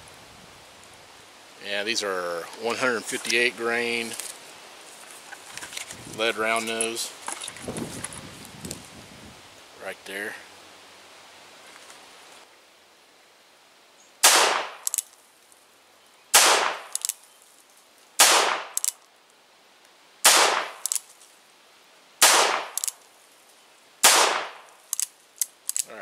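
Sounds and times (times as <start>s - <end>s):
revolver gunshots: 14.2s - 14.8s, 16.4s - 16.9s, 18.2s - 18.8s, 20.2s - 20.8s, 22.2s - 22.8s, 24.0s - 24.6s.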